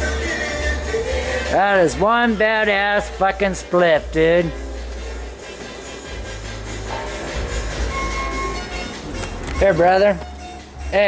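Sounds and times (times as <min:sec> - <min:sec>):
faint music: 0:00.0 - 0:11.0.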